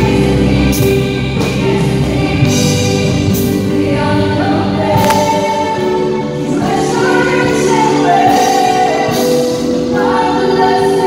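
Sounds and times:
man and woman singing together: 0.0 - 11.0
worship band playing: 0.0 - 11.0.

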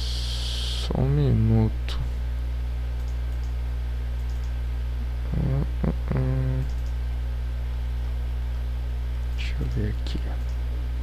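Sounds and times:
low electrical hum: 0.0 - 11.0
man humming in thought: 5.2 - 6.8.

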